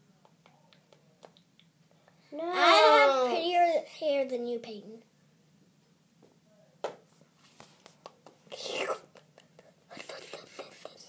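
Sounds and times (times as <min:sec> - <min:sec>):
girl whispering: 0:08.5 - 0:11.0.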